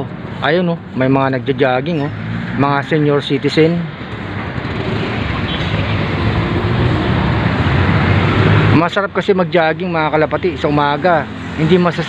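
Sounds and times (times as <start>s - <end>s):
street traffic rush: 0.0s - 12.0s
vehicle engine humming: 0.0s - 12.0s.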